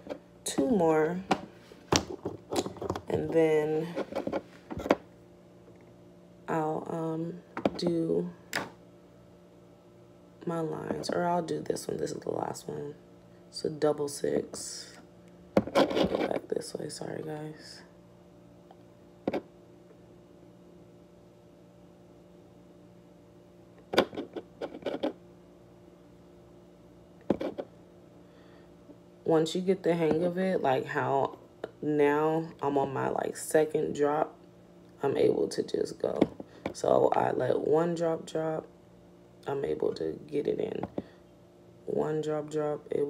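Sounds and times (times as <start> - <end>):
faint room hum: 0.0 - 43.0.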